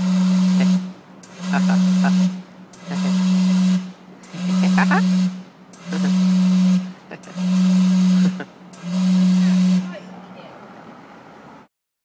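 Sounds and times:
steam whistle blasts: 0:00.0 - 0:10.1.

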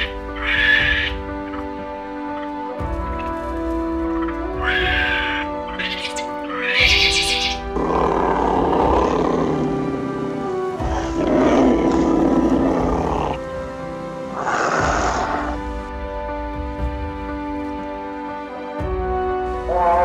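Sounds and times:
background music with chords: 0:00.0 - 0:20.0
tiger roaring: 0:07.6 - 0:13.4.

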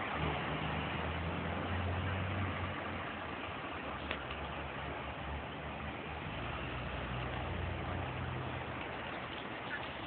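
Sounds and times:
bus engine: 0:00.0 - 0:10.0
car passing: 0:00.0 - 0:10.0
road noise: 0:00.0 - 0:10.0.

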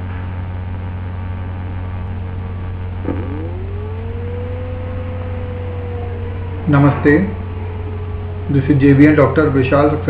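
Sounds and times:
electrical hum with hiss: 0:00.0 - 0:10.0
rising whine: 0:00.0 - 0:10.0.

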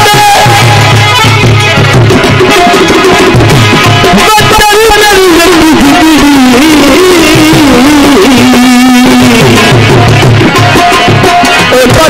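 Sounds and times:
harmonium: 0:00.0 - 0:12.0.

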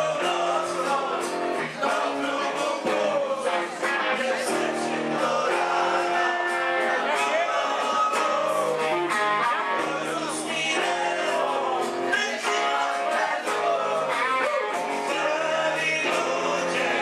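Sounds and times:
live band with guitar: 0:00.0 - 0:17.0.

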